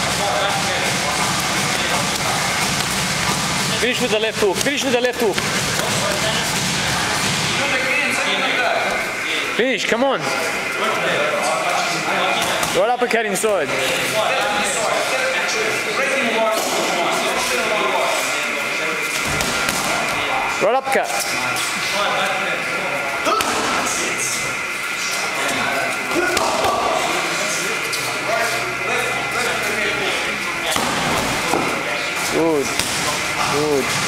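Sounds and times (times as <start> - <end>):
boxing gloves landing punches: 30.8 - 31.7.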